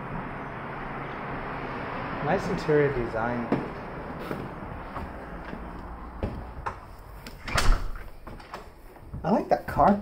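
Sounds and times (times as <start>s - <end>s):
footsteps: 3.4s - 10.0s
foot thumping on carpeted stairs: 3.5s - 7.3s
light handling knocks: 3.5s - 7.4s.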